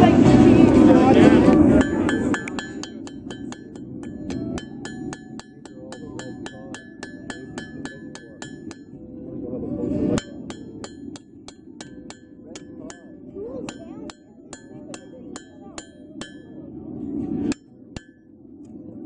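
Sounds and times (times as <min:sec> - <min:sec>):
hammer striking anvil: 0:01.7 - 0:09.0, 0:10.1 - 0:16.7, 0:17.5 - 0:18.2.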